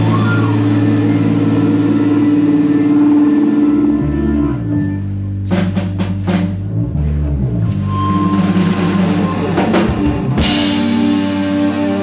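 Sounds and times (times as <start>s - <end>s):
live rock band playing: 0.0s - 12.0s
quick percussion strikes: 0.0s - 12.0s.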